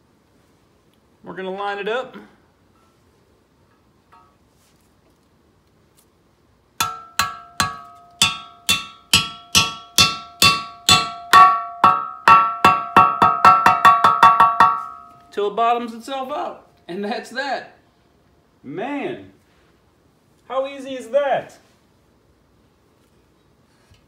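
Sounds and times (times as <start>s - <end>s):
hammer blows with metallic ring: 6.8s - 15.4s.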